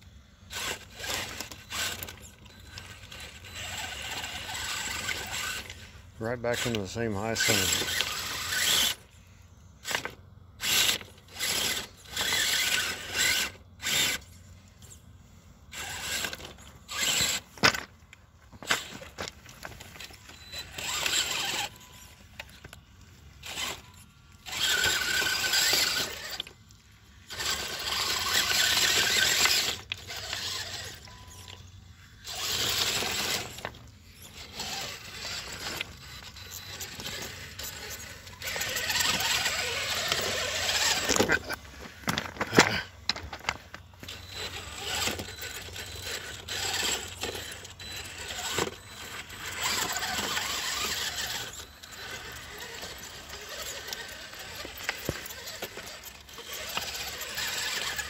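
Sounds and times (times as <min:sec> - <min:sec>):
toy truck motor whining and grinding: 0:00.0 - 0:58.0.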